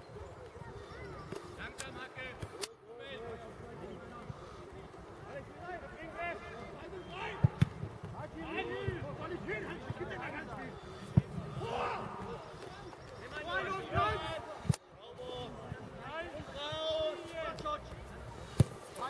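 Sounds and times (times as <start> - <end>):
people shouting: 11.5 - 12.4
football being kicked: 18.5 - 18.9.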